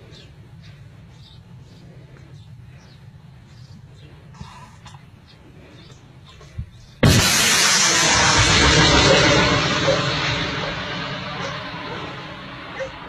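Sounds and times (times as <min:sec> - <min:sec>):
missile launch blast: 0:07.0 - 0:13.0
rocket motor rushing: 0:07.0 - 0:13.0.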